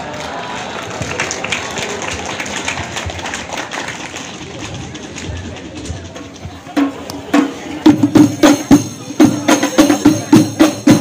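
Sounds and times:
audience applause: 0.0s - 5.1s
crowd noise: 0.0s - 11.0s.

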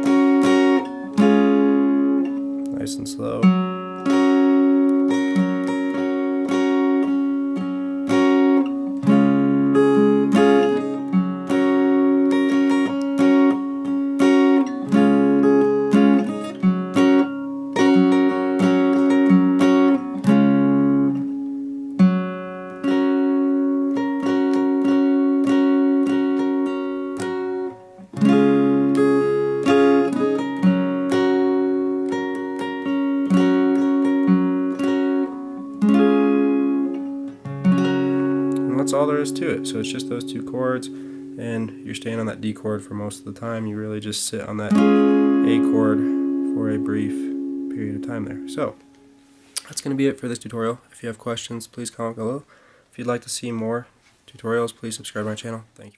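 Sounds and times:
acoustic guitar strumming: 0.0s - 51.4s.

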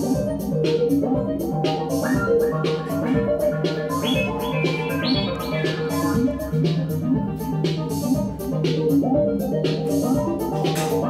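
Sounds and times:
low synth bass line: 0.0s - 11.0s
sequenced synthesizer notes: 0.0s - 11.0s.

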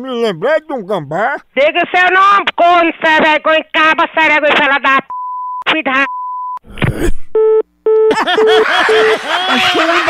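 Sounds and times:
steady high bleep: 7.4s - 9.2s.

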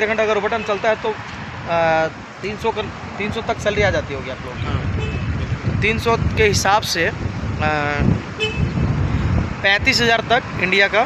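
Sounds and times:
low traffic rumble: 0.0s - 11.0s
vehicle horn toot: 5.0s - 5.4s, 8.4s - 8.8s.

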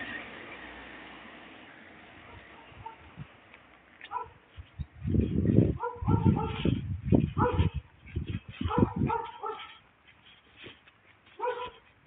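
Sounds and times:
dog barking: 2.3s - 3.1s, 4.1s - 4.4s, 5.8s - 6.8s, 7.4s - 7.8s, 8.6s - 9.8s, 11.4s - 11.8s.

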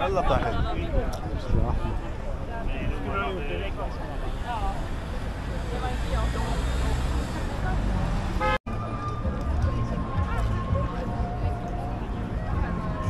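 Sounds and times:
passers-by talking: 0.0s - 13.0s
traffic rumble: 0.0s - 13.0s.

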